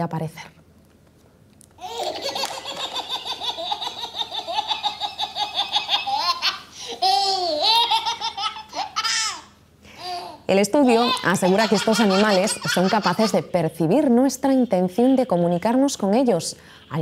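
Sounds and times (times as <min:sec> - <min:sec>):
baby belly-laughing: 0:01.8 - 0:13.5.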